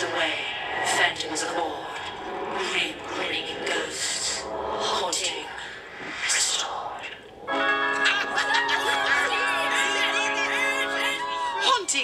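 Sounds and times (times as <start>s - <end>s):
breathy rasping eerie swells: 0.0s - 11.8s
music with sustained notes: 7.4s - 12.0s.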